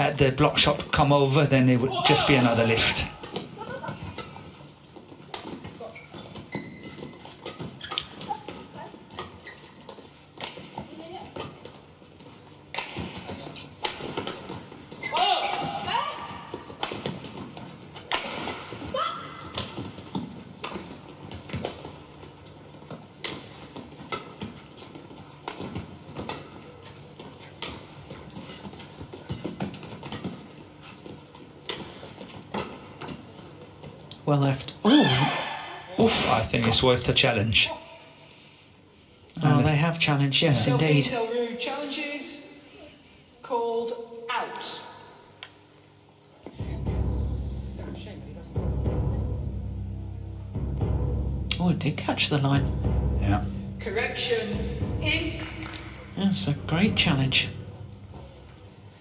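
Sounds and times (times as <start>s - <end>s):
shoes squeaking on court: 2.0s - 34.2s
racket hitting shuttlecock: 12.7s - 22.0s.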